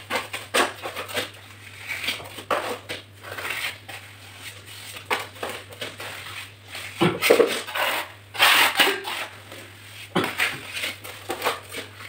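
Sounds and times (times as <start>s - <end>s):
hand tool scraping cement: 6.2s - 12.0s.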